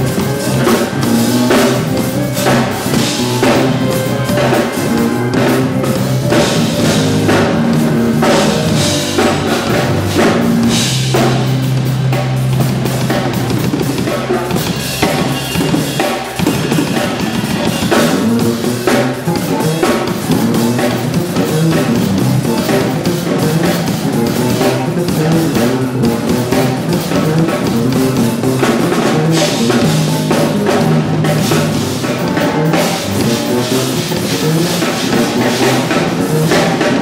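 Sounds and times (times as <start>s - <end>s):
drum kit groove: 0.0s - 37.0s
electric bass guitar: 0.0s - 37.0s
organ: 0.0s - 37.0s.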